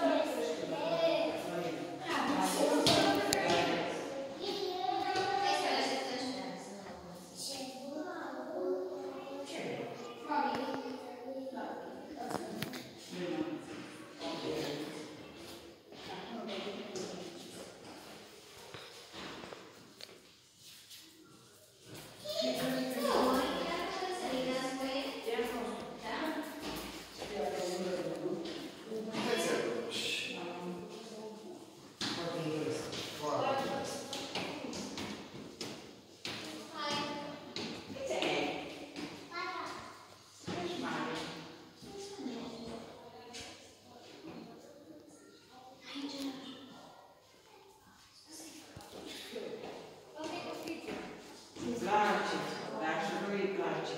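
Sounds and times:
people talking indistinctly: 0:00.0 - 0:17.6
people talking in echoing hall: 0:00.0 - 0:53.9.

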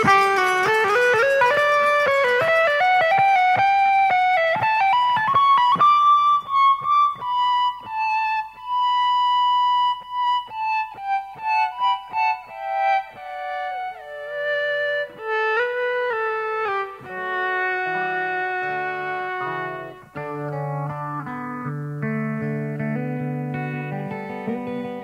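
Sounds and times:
electric guitar melody: 0:00.0 - 0:25.0.

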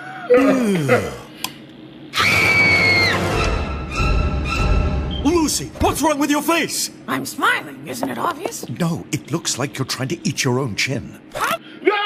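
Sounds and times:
shrill high held note: 0:02.2 - 0:05.3.

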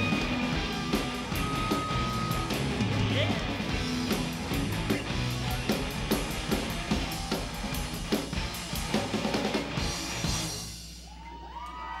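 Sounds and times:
crowd cheering and whooping: 0:00.0 - 0:02.9, 0:06.6 - 0:07.8, 0:10.9 - 0:12.0.

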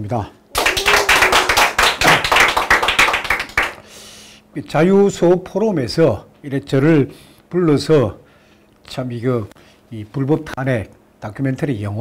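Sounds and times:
audience applauding: 0:00.5 - 0:03.8.

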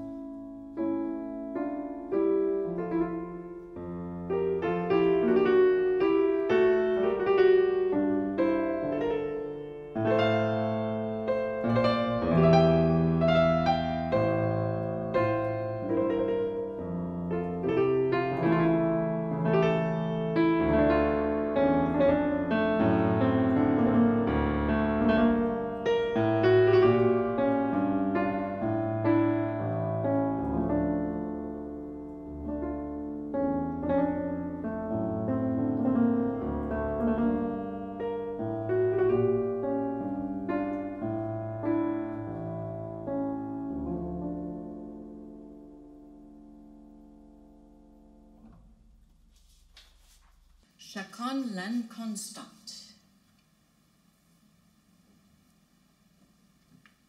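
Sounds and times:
piano playing slow chords: 0:00.0 - 0:49.5.

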